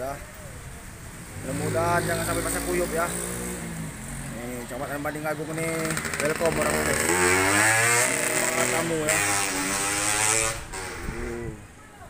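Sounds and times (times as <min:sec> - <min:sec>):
motorcycle passing by: 0:01.3 - 0:11.7.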